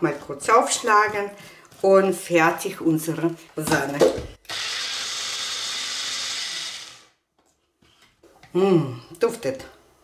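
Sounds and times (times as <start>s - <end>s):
blender motor running: 4.4s - 7.2s.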